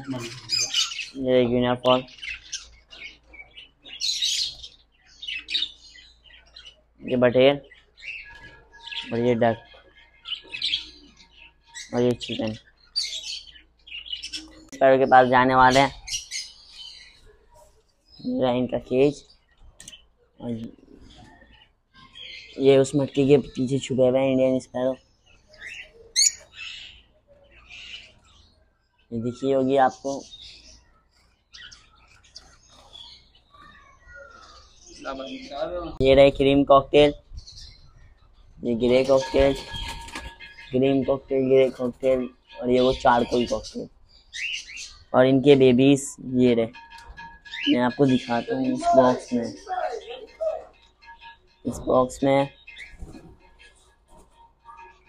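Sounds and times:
young poultry chirping: 0:00.0 - 0:55.0.

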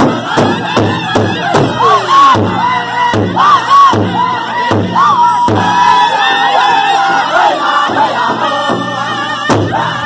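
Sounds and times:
group singing in high voices: 0:00.0 - 0:10.0.

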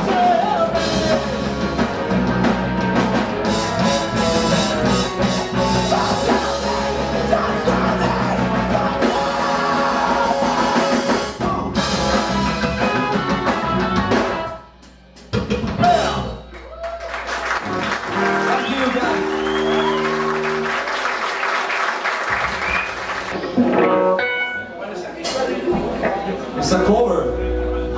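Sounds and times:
crowd noise: 0:00.0 - 0:14.5, 0:15.9 - 0:27.9
punk band playing live: 0:00.0 - 0:21.1, 0:22.2 - 0:27.9
held guitar notes: 0:23.4 - 0:24.9.

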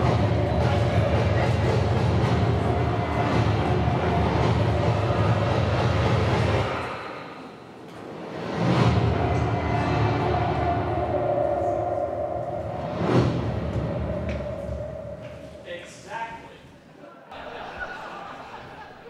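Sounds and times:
trailer music over speakers: 0:00.0 - 0:15.4
swelling music hits: 0:00.0 - 0:15.6.

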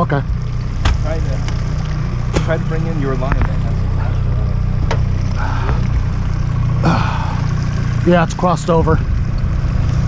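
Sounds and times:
outboard motor running: 0:00.0 - 0:10.0.

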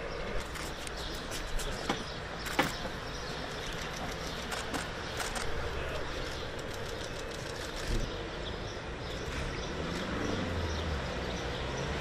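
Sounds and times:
city background noise: 0:00.0 - 0:12.0.

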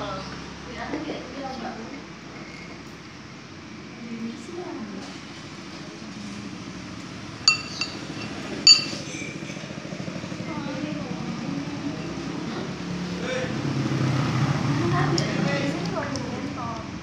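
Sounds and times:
cutlery clinking on ceramic bowl: 0:07.5 - 0:09.3.

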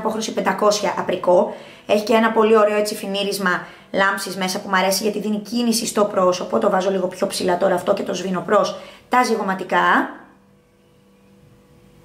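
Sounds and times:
woman's voice: 0:00.0 - 0:10.3
faint electrical hum: 0:00.0 - 0:12.0.

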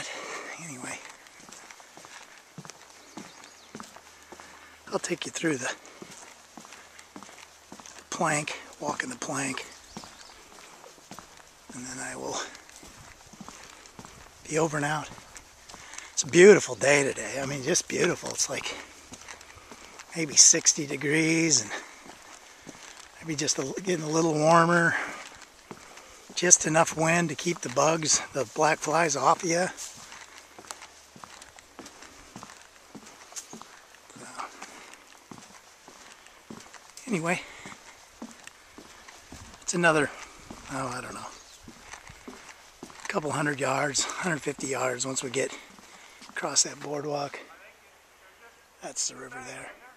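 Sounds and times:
footsteps on wooden boardwalk: 0:00.0 - 0:47.5
faint steady background noise: 0:00.0 - 0:49.9.

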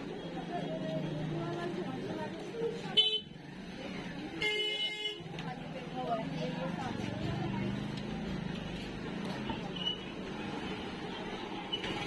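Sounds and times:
street chatter: 0:00.0 - 0:12.0.

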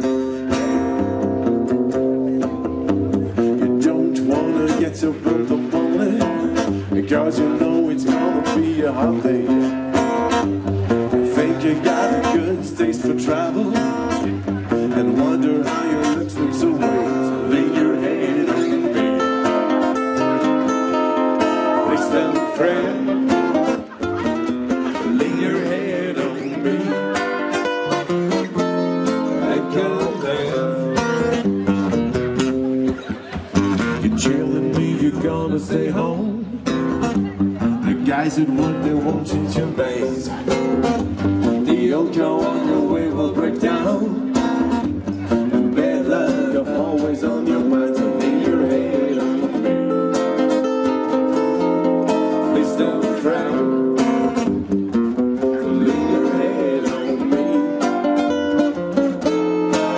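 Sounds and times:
strummed guitar: 0:00.0 - 0:59.9
person singing: 0:03.5 - 0:09.7, 0:11.2 - 0:20.3, 0:21.1 - 0:27.9, 0:28.5 - 0:31.3, 0:33.9 - 0:40.8, 0:41.4 - 0:44.4, 0:45.2 - 0:54.3, 0:55.4 - 0:59.9.

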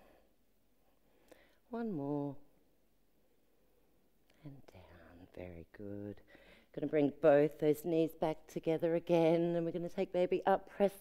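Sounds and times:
woman's voice: 0:01.7 - 0:02.5, 0:04.4 - 0:11.0.

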